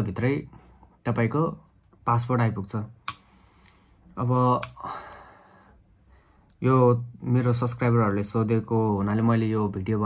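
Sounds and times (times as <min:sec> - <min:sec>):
sharp clicks: 0:03.0 - 0:03.8, 0:04.5 - 0:05.2.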